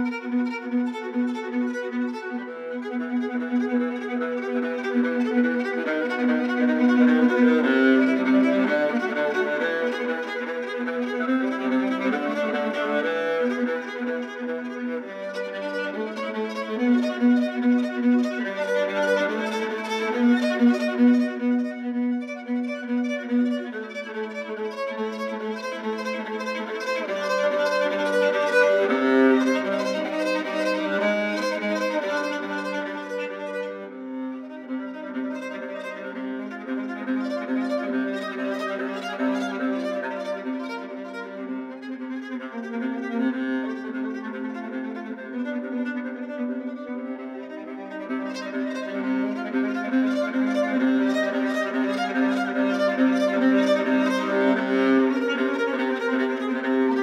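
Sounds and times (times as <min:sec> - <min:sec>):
bowed solo viola: 0:00.0 - 0:57.0.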